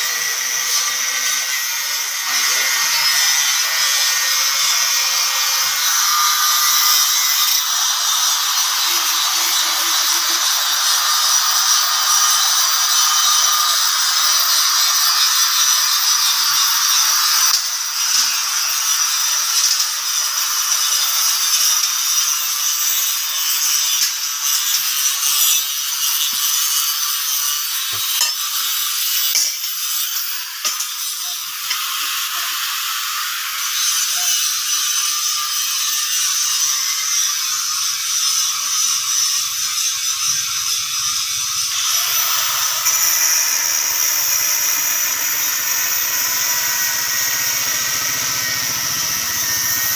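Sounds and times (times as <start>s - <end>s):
angle grinder cutting steel: 0.0s - 49.9s.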